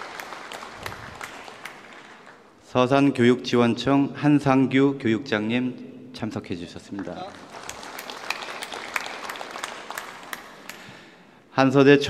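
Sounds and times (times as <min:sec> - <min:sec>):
audience applauding: 0:00.0 - 0:02.6, 0:07.0 - 0:11.2.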